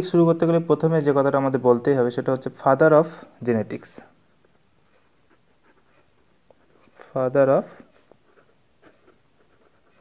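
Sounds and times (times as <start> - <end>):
pen scratching on paper: 4.2 - 10.0.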